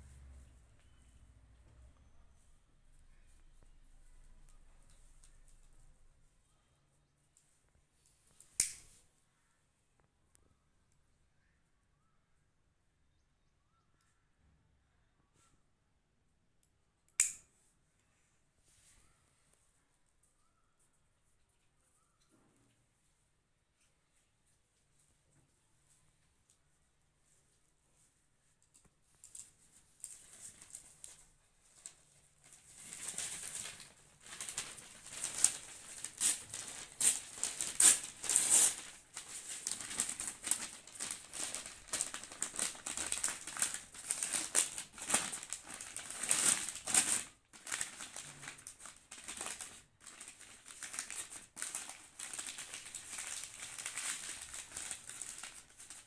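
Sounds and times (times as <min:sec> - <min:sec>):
newspaper rustling: 0:29.2 - 0:56.0
plastic bag crinkling: 0:29.2 - 0:56.0
cloth rustling: 0:29.3 - 0:56.0.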